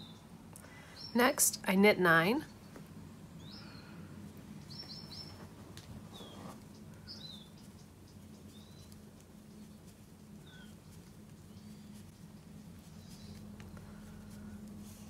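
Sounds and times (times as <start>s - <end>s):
steady low hum: 0.0s - 15.0s
small bird chirps: 4.6s - 13.9s.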